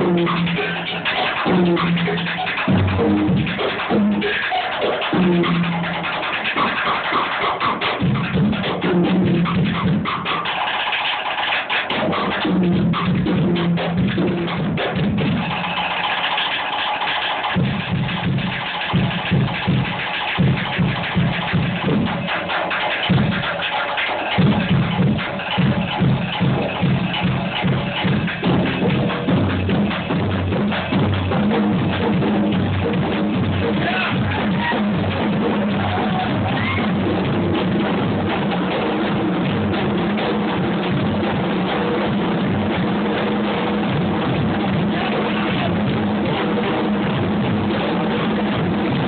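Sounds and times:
drums struck in quick patterns: 0.0 - 49.0.

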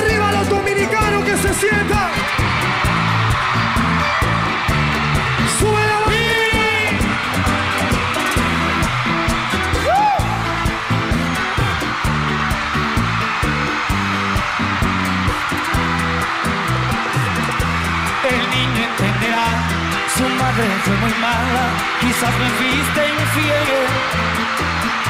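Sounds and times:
arena crowd cheering: 0.0 - 25.0
live band playing: 0.0 - 25.0.

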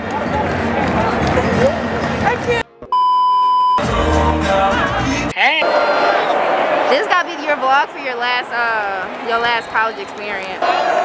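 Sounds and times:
stadium crowd noise: 0.0 - 2.9, 3.8 - 11.0
high electronic beep: 2.9 - 3.8.

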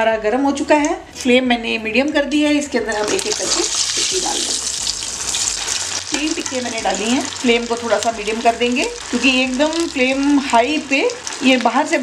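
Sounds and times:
patty sizzling in hot oil: 2.9 - 12.0.

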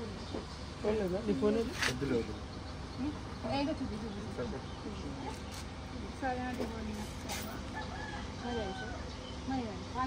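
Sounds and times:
rooster crowing: 7.5 - 9.1.

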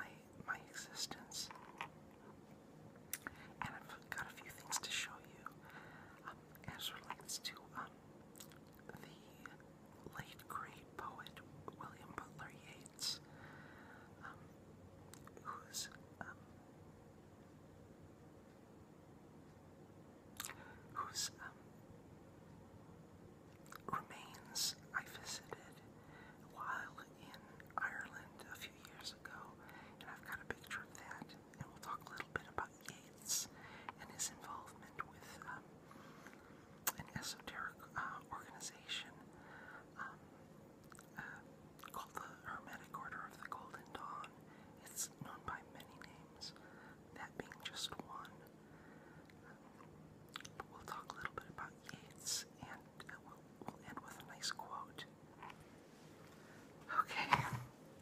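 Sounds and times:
person whispering: 0.0 - 1.9, 3.2 - 5.6, 6.2 - 8.0, 8.9 - 13.3, 15.2 - 16.4, 20.4 - 21.6, 23.8 - 25.8, 26.5 - 35.6, 36.8 - 39.2, 41.0 - 46.6, 47.2 - 48.5, 50.4 - 55.6, 56.8 - 57.7.

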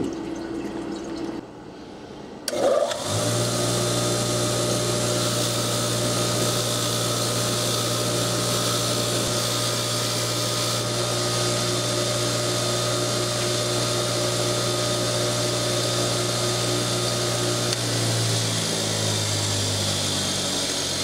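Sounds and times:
bench grinder motor humming: 2.5 - 21.0.

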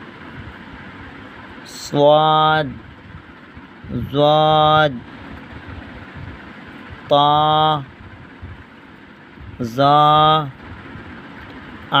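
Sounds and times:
steady background hum: 0.0 - 12.0
person reciting letter names: 1.7 - 2.8, 3.9 - 5.1, 7.1 - 7.9, 9.6 - 10.5.

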